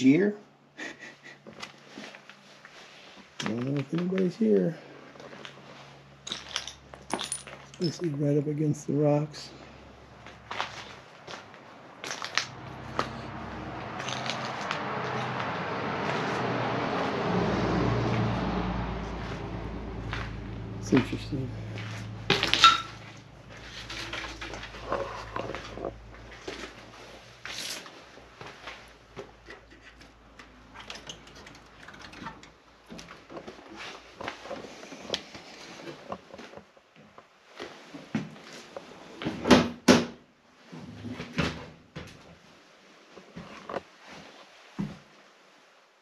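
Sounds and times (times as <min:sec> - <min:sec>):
footsteps crunching over debris: 0:10.2 - 0:13.2.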